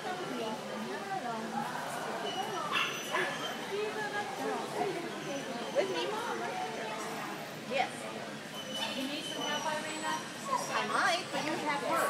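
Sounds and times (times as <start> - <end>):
people chattering: 0.0 - 12.0
dog barking: 2.7 - 3.5.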